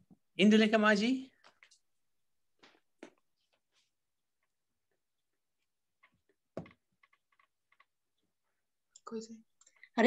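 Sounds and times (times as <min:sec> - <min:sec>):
knock: 0:06.5 - 0:06.8.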